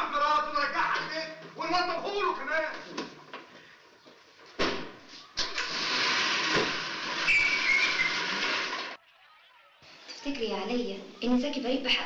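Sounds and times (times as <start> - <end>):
thump: 4.6 - 5.0.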